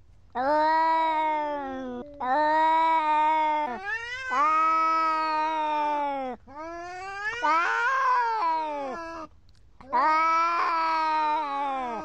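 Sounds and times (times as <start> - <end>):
cats yowling: 0.4 - 6.2, 6.8 - 9.3, 9.9 - 12.0.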